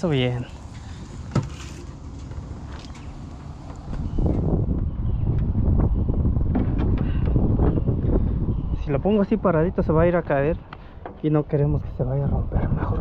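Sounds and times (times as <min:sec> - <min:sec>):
wind buffeting microphone: 0:00.0 - 0:13.0
knocks and scrapes of wooden cabinet: 0:01.2 - 0:02.5.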